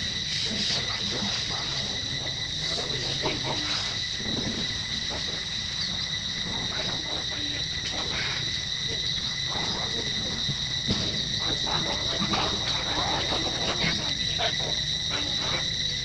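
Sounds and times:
high-pitched insect drone: 0.0s - 16.0s.

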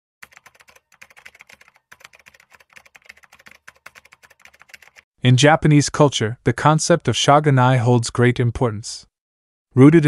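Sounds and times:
keyboard typing clicks: 0.2s - 5.0s.

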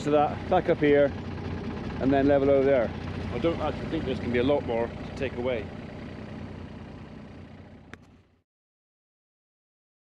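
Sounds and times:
machine engine idling: 0.0s - 8.4s.

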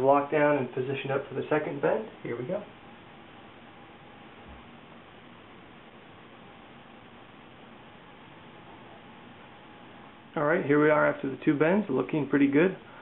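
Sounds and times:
faint room tone hiss: 0.0s - 13.0s
thin constant hum: 0.0s - 13.0s.

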